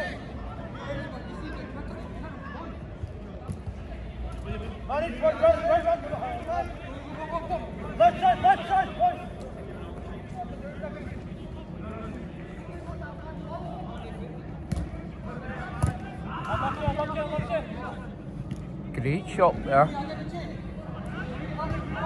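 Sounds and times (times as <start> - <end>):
players shouting: 4.4 - 12.3.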